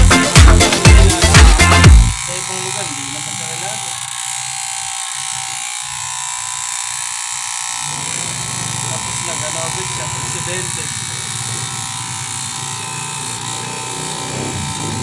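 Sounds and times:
dance music with heavy beat: 0.0s - 2.2s
electric hair clippers buzzing: 0.0s - 15.0s.

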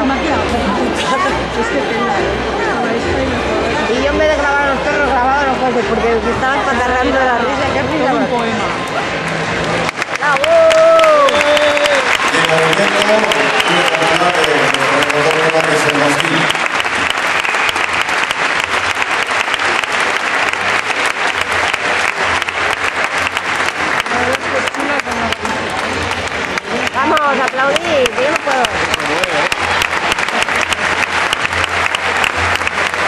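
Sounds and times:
audience applauding: 8.8s - 33.0s.

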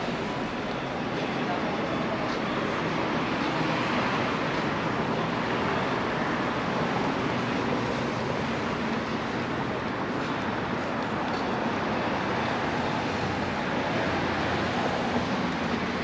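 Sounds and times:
street traffic noise: 0.0s - 16.0s.

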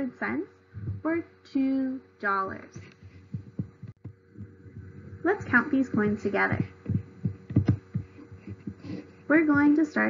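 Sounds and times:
faint steady hum: 0.0s - 10.0s
soft low uneven thumps: 0.7s - 1.2s, 2.6s - 10.0s.

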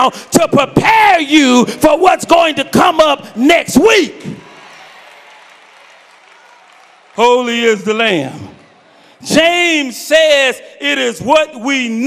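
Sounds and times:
congregation applauding: 3.9s - 9.9s.

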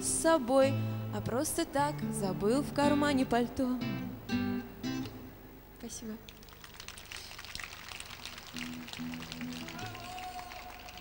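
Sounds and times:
acoustic guitar notes: 0.0s - 6.0s
audience applause: 6.4s - 11.0s.

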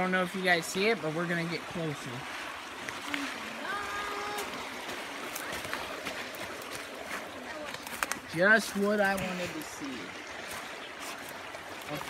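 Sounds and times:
creek water running: 0.0s - 12.0s
twigs crackling underfoot: 2.8s - 9.8s.

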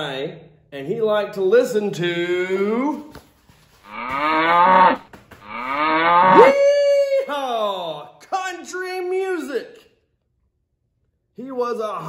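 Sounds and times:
man whooping yee-haw: 6.4s - 7.3s.

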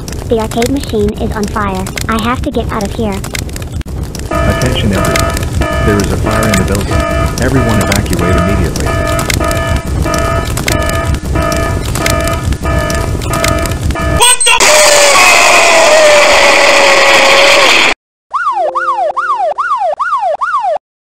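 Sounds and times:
loud explosion roar: 3.5s - 18.0s
electronic fire alarm: 4.3s - 14.6s, 18.3s - 20.8s
siren wailing: 4.3s - 20.8s.

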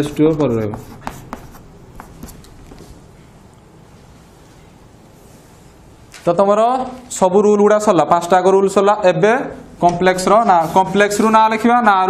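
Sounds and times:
chalk writing on chalkboard: 0.0s - 2.9s.

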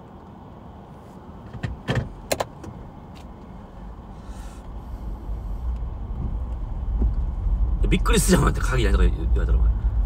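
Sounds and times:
low steady rumble: 0.0s - 10.0s
sharp clicks and knocks: 1.4s - 3.3s.

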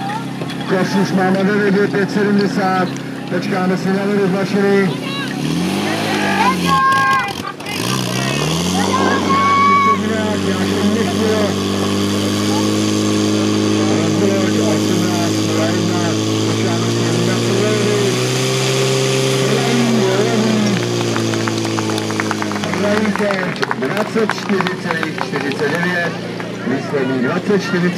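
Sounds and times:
pump engine revving: 0.0s - 27.9s
people shouting: 4.9s - 7.5s, 8.1s - 11.2s.

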